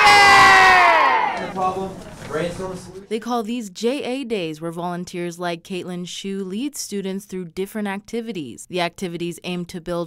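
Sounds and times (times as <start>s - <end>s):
children shouting yay: 0.0s - 1.5s.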